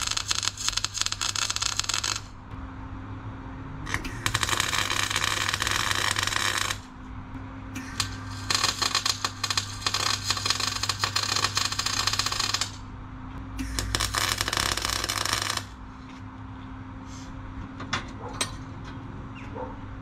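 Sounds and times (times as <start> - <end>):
welding arc crackling: 0.0 - 2.4, 3.9 - 6.9, 7.8 - 12.9, 13.6 - 15.8
steady low hum: 0.0 - 20.0.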